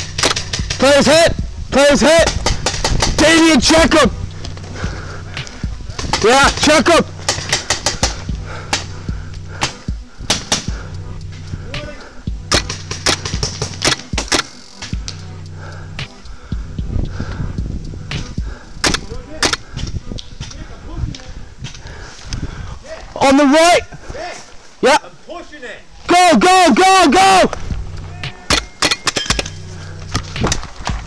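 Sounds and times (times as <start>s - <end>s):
paintball markers firing: 0.0s - 1.1s, 2.2s - 3.5s, 5.4s - 9.0s, 9.6s - 10.8s, 12.5s - 15.2s, 18.8s - 20.6s
steady low hum: 7.0s - 18.8s.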